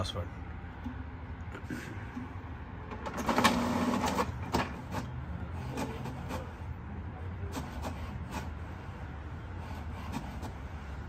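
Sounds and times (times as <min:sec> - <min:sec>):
printer motors humming: 0:00.8 - 0:11.0
sharp printer clicks: 0:02.9 - 0:06.5, 0:07.5 - 0:08.6.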